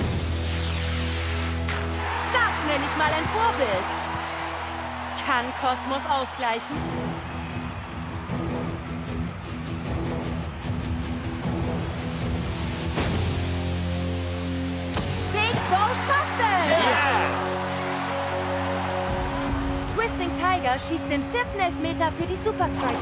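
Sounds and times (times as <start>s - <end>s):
crowd cheering: 1.7s - 11.5s, 15.1s - 23.0s.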